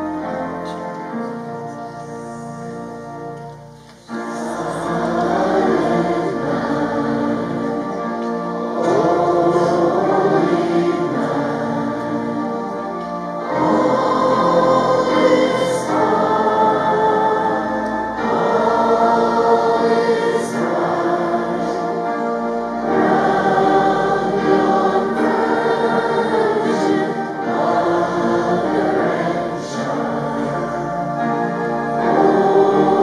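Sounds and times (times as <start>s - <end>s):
congregation singing a hymn: 0.0s - 33.0s.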